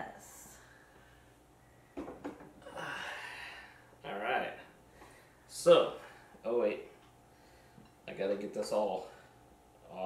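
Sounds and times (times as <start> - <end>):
breathy exhale: 2.7 - 3.9.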